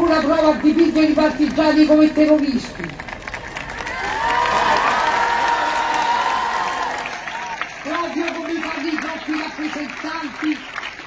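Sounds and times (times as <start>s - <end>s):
crowd clapping: 0.0s - 11.0s
crowd cheering: 3.0s - 11.0s.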